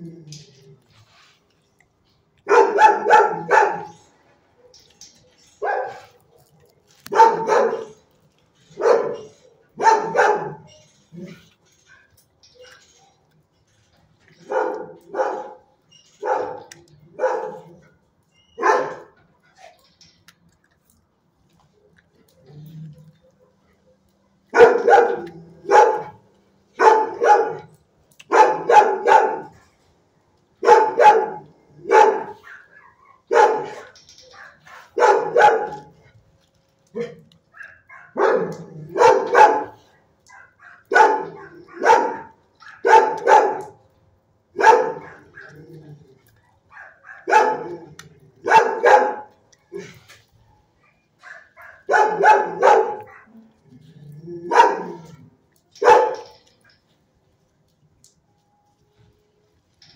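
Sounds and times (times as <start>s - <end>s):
dog barking: 2.5s - 4.0s, 5.6s - 6.2s, 7.0s - 8.0s, 8.8s - 10.7s, 14.4s - 15.6s, 16.2s - 17.7s, 18.6s - 19.1s, 24.5s - 26.2s, 26.8s - 29.6s, 30.6s - 36.0s, 37.0s - 43.8s, 44.6s - 45.6s, 46.7s - 49.9s, 50.8s - 53.4s, 54.4s - 55.2s, 55.8s - 56.4s.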